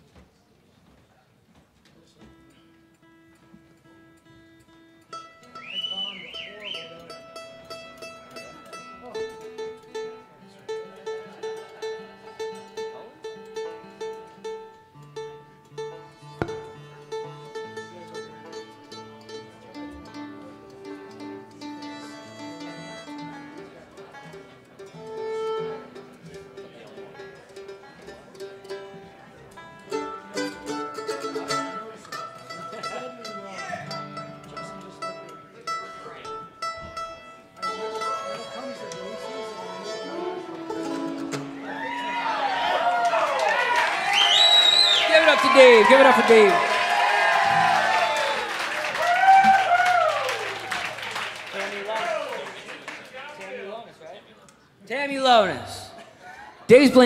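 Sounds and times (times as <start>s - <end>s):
acoustic guitar: 2.0s - 43.6s
mandolin: 2.0s - 43.8s, 45.1s - 57.0s
fiddle: 2.2s - 44.1s.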